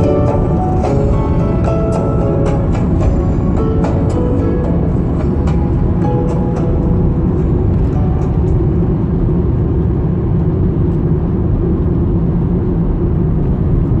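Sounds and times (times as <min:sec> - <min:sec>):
music: 0:00.0 - 0:09.6
car driving on road: 0:00.0 - 0:14.0.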